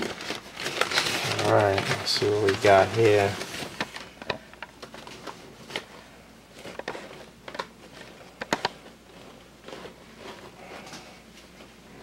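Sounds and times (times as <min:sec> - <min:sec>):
crumpled paper rustling: 0:00.0 - 0:11.8.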